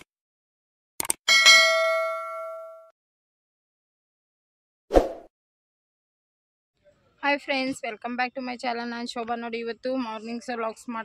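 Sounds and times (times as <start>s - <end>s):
notification bell ding: 1.3s - 2.9s.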